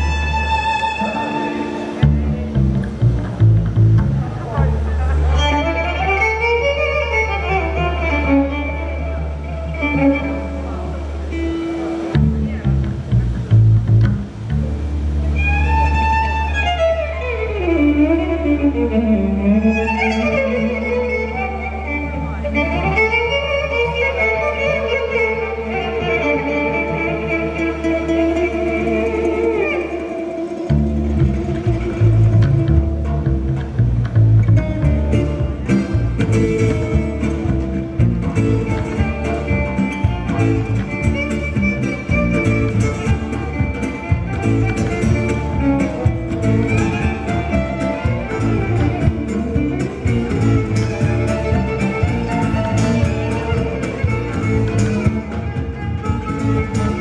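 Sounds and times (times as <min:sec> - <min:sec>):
double bass: 0:00.0 - 0:57.0
fiddle sliding phrases: 0:00.0 - 0:57.0
guitars: 0:00.0 - 0:57.0
drums: 0:30.7 - 0:57.0.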